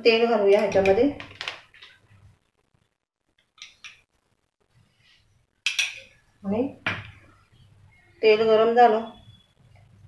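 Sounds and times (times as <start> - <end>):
spoon clinking on cookware: 3.6 - 4.0, 5.6 - 6.2.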